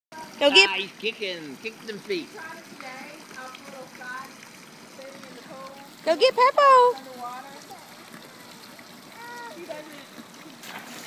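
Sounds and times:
pool water splashing: 0:00.1 - 0:11.0.

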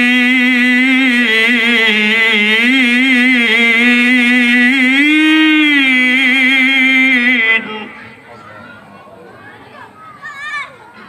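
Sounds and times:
man reciting melodically into microphone: 0:00.0 - 0:08.8.

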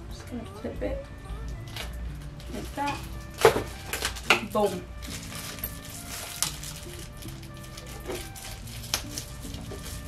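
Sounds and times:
background music with held notes: 0:00.0 - 0:10.0
plastic wrapping crackling: 0:01.4 - 0:10.0.

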